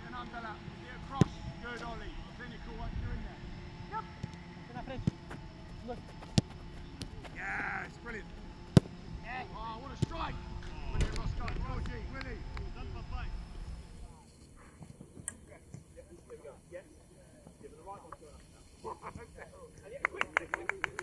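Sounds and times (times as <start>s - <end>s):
football kick thuds: 4.9s - 9.0s
people shouting: 7.2s - 8.3s.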